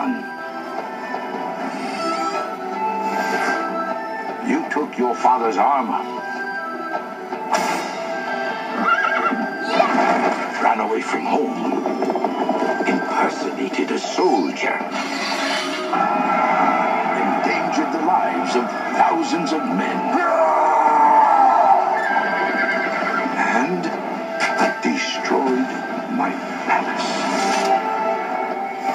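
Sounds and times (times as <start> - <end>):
film score music: 0.0 - 28.9
horse whinnying: 8.7 - 9.9, 21.1 - 23.4
cartoon horse whinny: 8.8 - 9.4.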